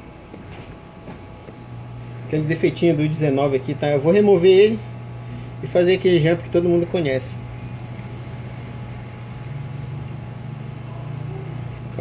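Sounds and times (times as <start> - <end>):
hot air blower humming: 0.0 - 12.0.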